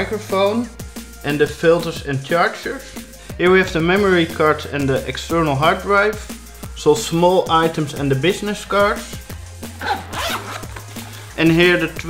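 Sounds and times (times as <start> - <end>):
background music with bass: 0.0 - 12.0
backpack zipper pulled open: 9.7 - 11.3.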